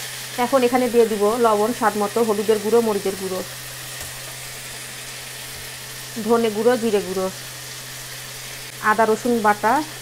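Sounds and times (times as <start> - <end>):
potatoes sizzling in oil: 0.0 - 10.0.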